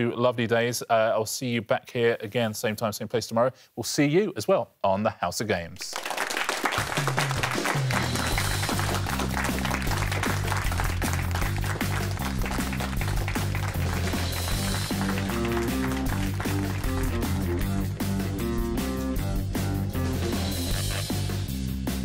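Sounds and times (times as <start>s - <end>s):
people clapping: 5.8s - 18.0s
theme music with repeating bass line: 6.8s - 22.0s
person laughing: 20.5s - 21.2s.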